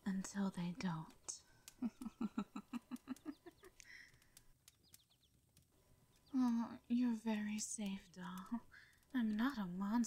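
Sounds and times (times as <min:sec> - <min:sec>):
faint clicks: 0:00.1 - 0:06.6, 0:07.2 - 0:10.0.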